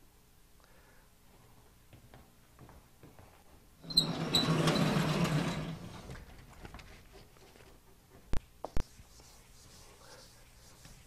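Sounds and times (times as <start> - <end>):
sliding panel rumbling: 3.9 - 6.5.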